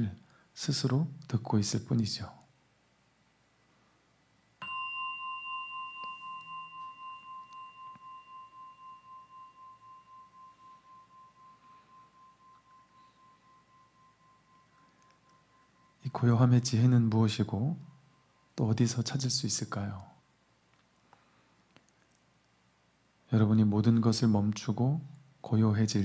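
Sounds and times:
singing bowl ringing: 4.6s - 19.9s.

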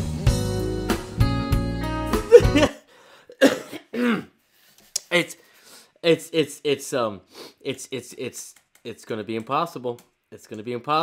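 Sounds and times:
man coughing: 2.3s - 4.4s.

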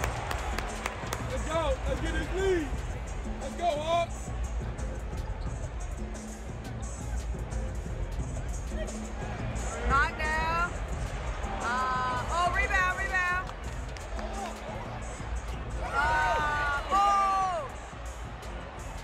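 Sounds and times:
music over pa system: 0.0s - 19.0s.

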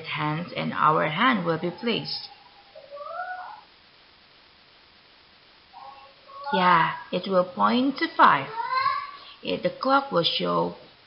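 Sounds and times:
high-pitched animal call: 1.6s - 3.7s.

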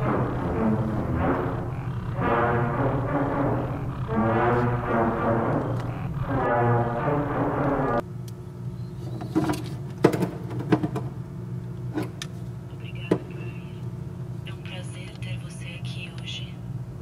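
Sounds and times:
brass music: 0.0s - 8.0s
steady low hum: 0.0s - 9.2s.

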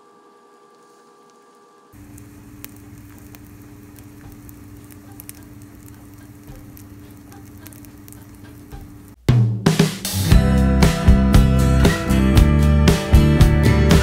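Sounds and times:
mushrooms sizzling in oil: 2.0s - 9.2s.

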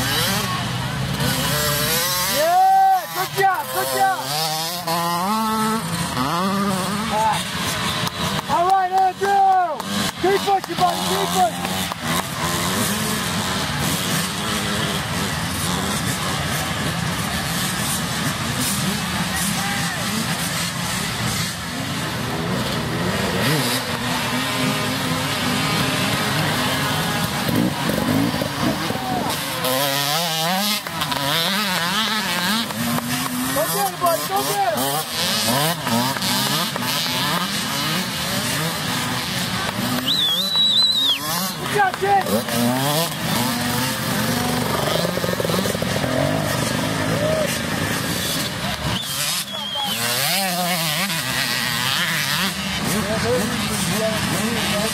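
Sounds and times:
dirt bike engines revving: 0.0s - 54.9s
people shouting: 2.2s - 4.3s, 47.0s - 47.8s.

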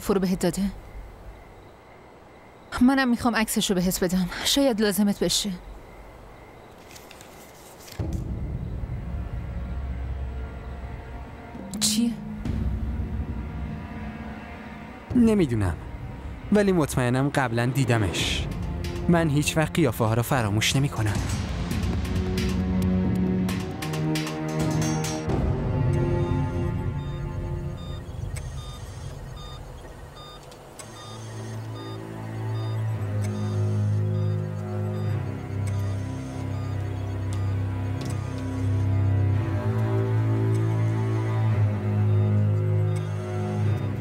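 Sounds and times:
patient monitor beeps: 0.0s - 9.0s, 25.3s - 44.0s
low drone score: 8.0s - 44.0s
drama music: 17.9s - 44.0s.

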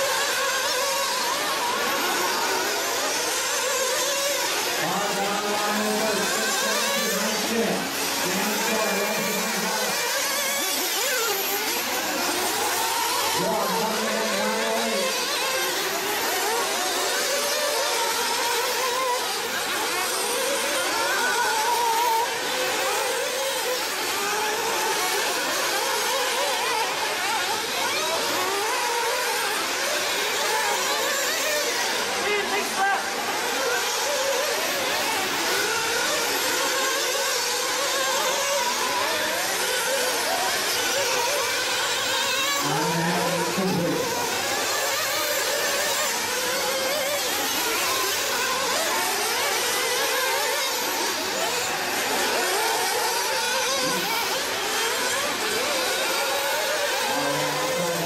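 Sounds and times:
rc buggy engines revving: 0.0s - 58.0s.

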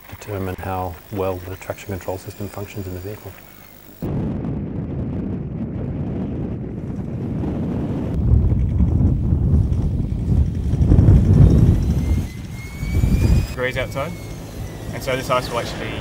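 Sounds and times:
pickup engine and tyres in snow: 0.0s - 4.1s, 8.1s - 16.0s
wind buffeting microphone: 4.0s - 16.0s.

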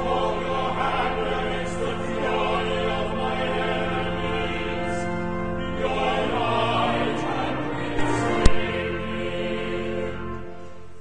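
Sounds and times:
choir singing a hymn: 0.0s - 10.8s
organ chords: 0.0s - 11.0s.

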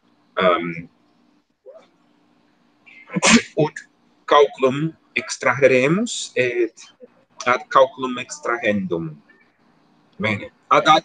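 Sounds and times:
person sneezing: 3.1s - 3.6s.

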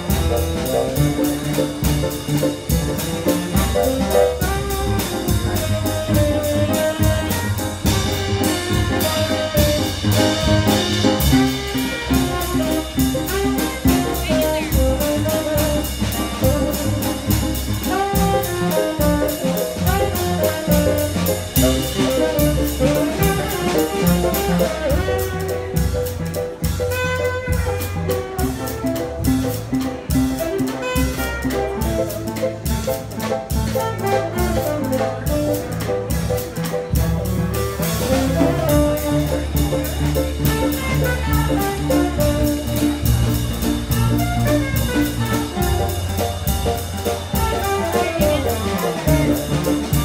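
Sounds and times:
bass: 0.0s - 50.0s
drum kit with cymbal rhythm: 0.0s - 50.0s
piano: 0.0s - 50.0s
saxophone: 30.3s - 32.4s, 43.8s - 46.2s, 47.3s - 50.0s.

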